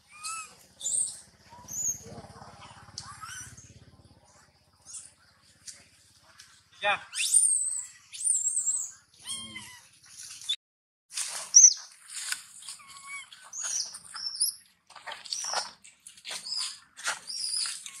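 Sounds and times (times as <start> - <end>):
baby monkey squealing and chirping: 0.0 - 3.7, 7.1 - 9.8, 12.7 - 14.6, 16.4 - 18.0.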